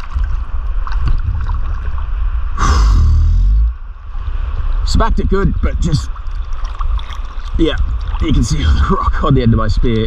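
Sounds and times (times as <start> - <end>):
water sloshing and lapping: 0.0 - 2.6, 5.7 - 10.0
steady low rumble: 0.0 - 10.0.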